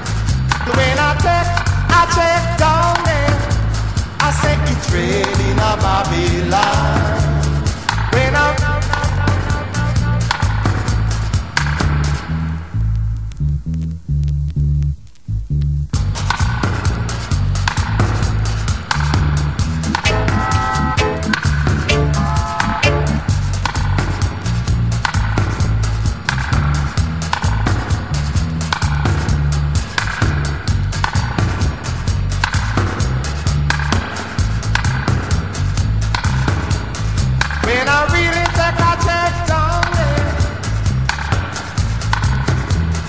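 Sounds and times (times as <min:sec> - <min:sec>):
steady drum beat with hi-hat: 0:00.0 - 0:12.4, 0:15.9 - 0:43.0
heavy reggae bass line: 0:00.0 - 0:43.0
wavering pitched line: 0:19.7 - 0:23.5
short pitched instrumental phrases: 0:19.8 - 0:23.5.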